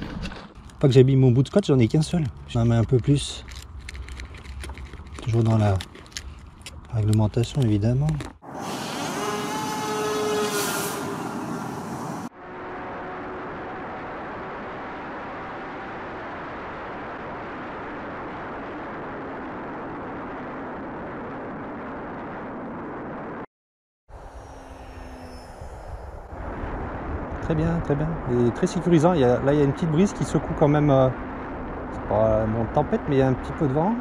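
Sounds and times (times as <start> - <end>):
rush of air: 8.4 - 12.3
sound with rising tones: 8.4 - 16.1, 24.1 - 27.4
electric motor drone: 8.5 - 12.3, 24.1 - 26.6.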